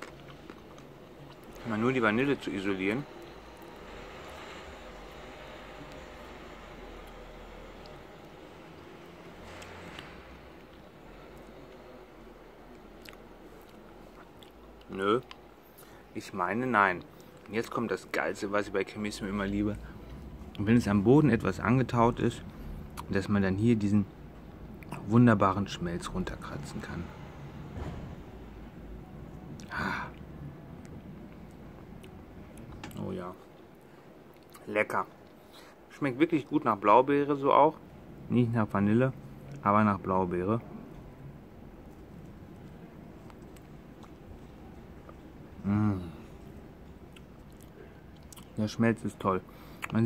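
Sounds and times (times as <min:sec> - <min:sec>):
low steady rumble: 0:00.0 - 0:49.8.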